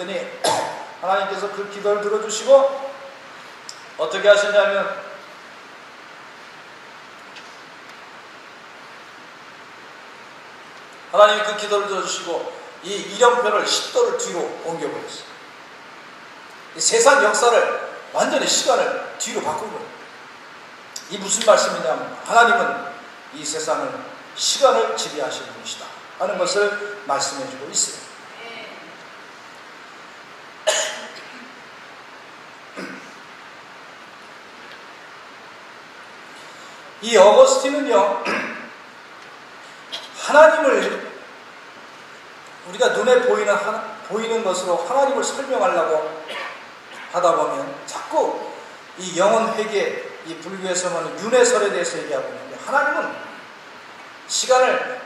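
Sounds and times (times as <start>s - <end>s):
microphone hiss: 0.0s - 55.0s
man coughing: 30.6s - 31.4s, 32.8s - 33.1s, 38.2s - 38.6s, 46.3s - 47.2s.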